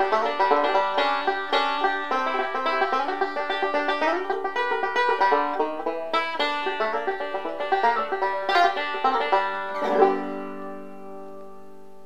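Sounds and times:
banjo chord ringing: 0.0 - 12.0.

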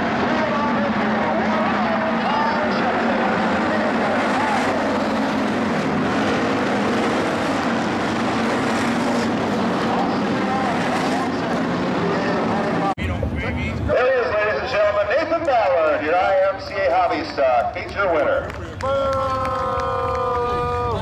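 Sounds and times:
race car engines droning: 0.0 - 21.0.

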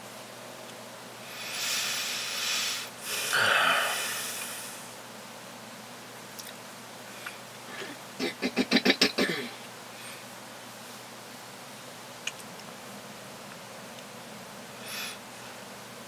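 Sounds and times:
man exhaling through nose: 1.3 - 5.0.

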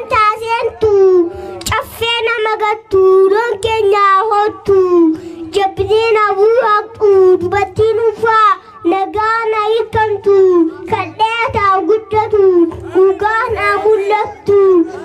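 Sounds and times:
boy singing into a microphone: 0.0 - 15.0.

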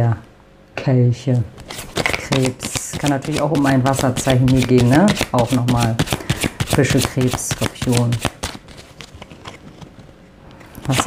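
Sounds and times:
card deck tapping on table: 2.0 - 8.4
woman speaking: 2.2 - 6.1, 6.7 - 8.3.

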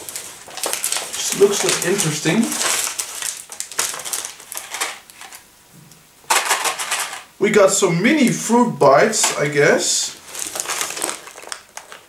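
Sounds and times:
candy wrappers crinkling: 0.0 - 5.5, 9.0 - 12.0.

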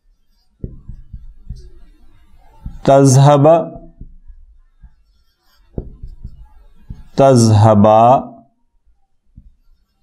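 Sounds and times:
marker knocking on whiteboard: 0.5 - 7.4, 9.3 - 10.0.

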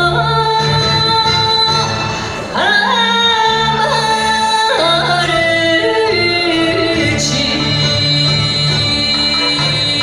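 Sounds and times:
karaoke backing track: 0.0 - 10.0
woman singing: 0.0 - 10.0.

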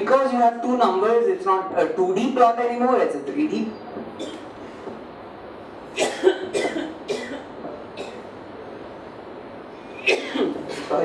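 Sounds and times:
man coughing: 6.0 - 8.2, 10.0 - 11.0.

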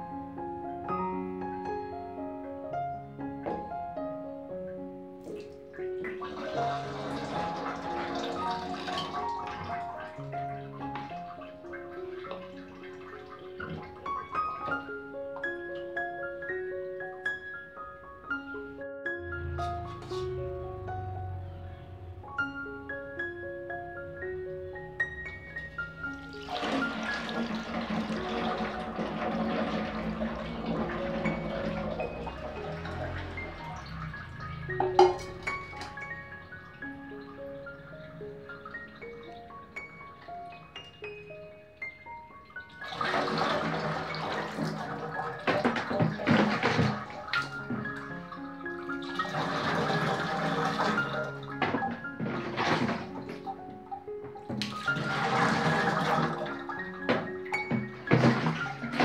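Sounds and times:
background music: 0.0 - 59.0
water splashing into metal tub: 5.2 - 15.0, 19.4 - 20.4, 25.2 - 41.1, 42.3 - 53.6, 54.3 - 59.0
liquid pouring into a steel bowl: 5.3 - 14.9, 25.2 - 40.1, 42.6 - 53.3, 54.6 - 57.3.

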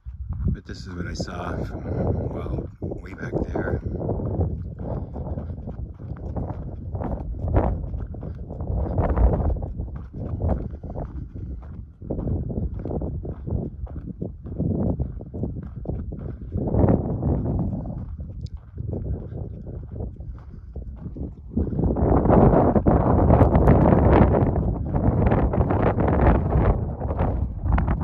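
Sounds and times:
footsteps on dirt trail: 0.0 - 28.0.

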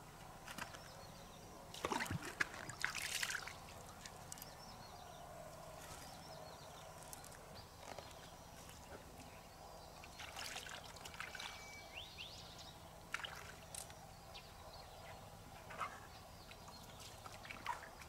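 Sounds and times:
river water splashing: 1.7 - 4.2, 10.0 - 11.8, 13.1 - 13.9, 16.8 - 18.0.

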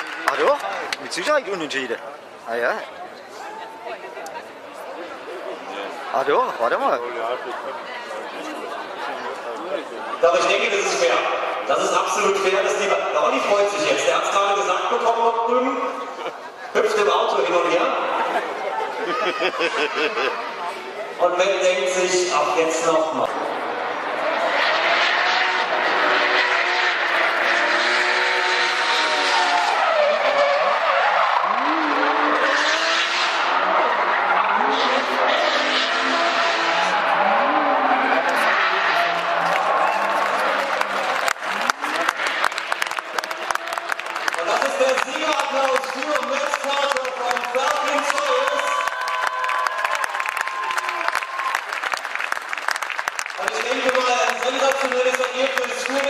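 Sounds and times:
car engines revving: 0.0 - 2.4, 21.6 - 48.7
tyres squealing and skidding: 24.2 - 40.8.

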